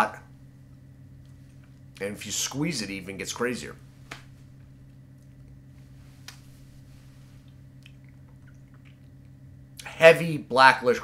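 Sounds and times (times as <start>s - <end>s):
steady low hum: 0.0s - 11.0s
wet mouth clicks chewing: 7.8s - 9.2s.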